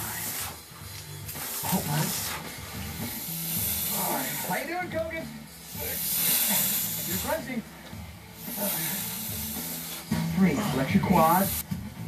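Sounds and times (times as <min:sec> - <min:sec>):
steady hiss: 0:00.0 - 0:11.8.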